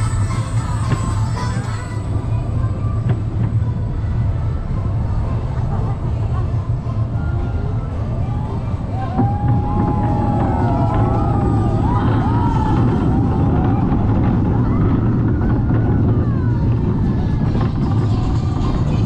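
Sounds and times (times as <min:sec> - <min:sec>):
roller coaster wheels rumbling: 0:00.0 - 0:19.0.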